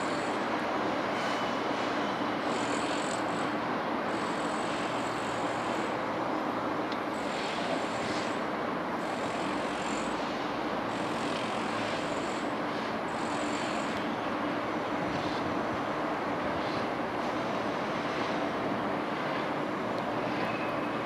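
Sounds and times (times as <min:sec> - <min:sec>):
electric train rumbling: 0:00.0 - 0:21.0
faint high whine: 0:20.2 - 0:21.0.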